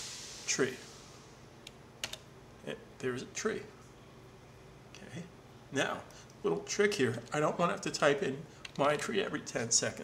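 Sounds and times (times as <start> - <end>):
computer keys clicking: 1.6 - 2.2.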